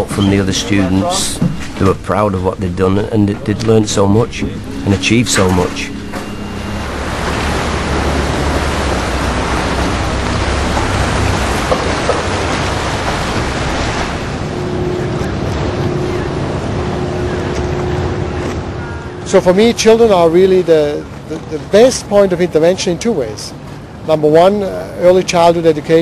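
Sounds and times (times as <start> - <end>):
faint steady hum: 0.0 - 26.0
water rushing: 0.0 - 26.0.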